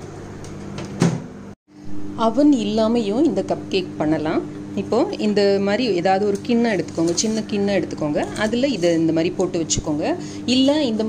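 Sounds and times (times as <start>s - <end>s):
microwave oven humming: 0.0s - 11.0s.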